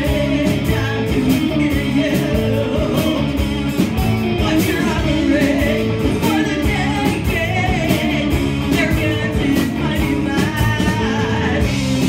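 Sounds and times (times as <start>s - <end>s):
bass guitar: 0.0s - 12.0s
distorted electric guitars: 0.0s - 12.0s
drum kit beat: 0.0s - 12.0s.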